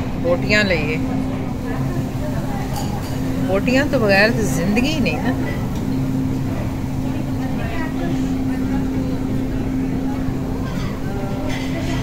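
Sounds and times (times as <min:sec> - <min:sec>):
faint voices talking: 0:00.0 - 0:12.0
steady low hum: 0:00.0 - 0:12.0.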